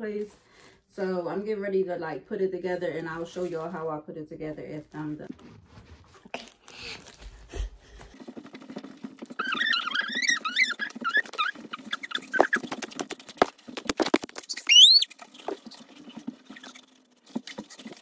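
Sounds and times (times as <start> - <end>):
hands tapping and rubbing phone: 7.0 - 18.0
child making squeaky sounds: 9.4 - 12.6, 14.5 - 15.1
child squealing: 9.4 - 12.6.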